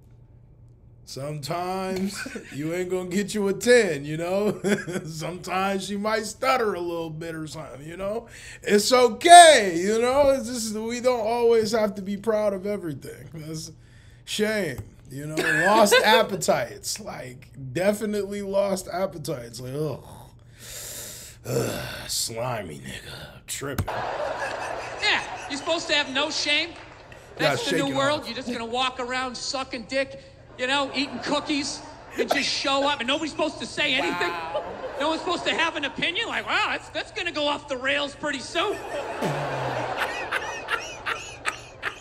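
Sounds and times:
person short grunt: 34.0s - 34.6s
squeaky laughter: 39.5s - 42.0s.

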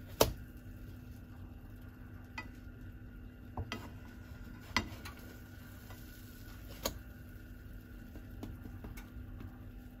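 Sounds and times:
faint frying sizzle: 0.0s - 10.0s.

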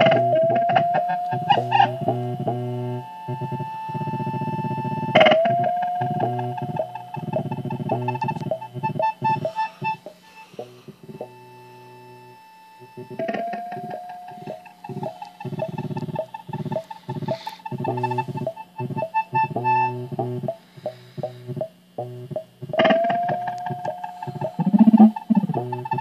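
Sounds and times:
synthesizer stuttering drone pulses: 0.0s - 26.0s.

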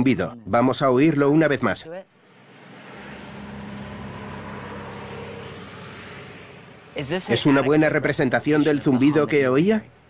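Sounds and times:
low traffic hum and rumble: 0.0s - 10.0s.

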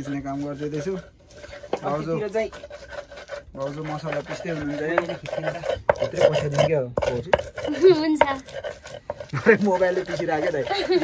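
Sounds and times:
stone pestle grinding on stone: 0.0s - 11.0s.

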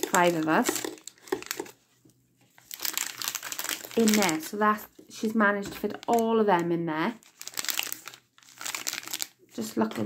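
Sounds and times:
plastic sachets crinkling: 0.0s - 1.8s, 2.5s - 10.0s.

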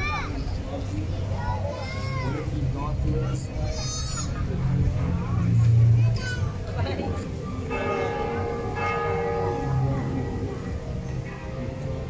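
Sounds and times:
church bell ringing: 7.7s - 12.0s.

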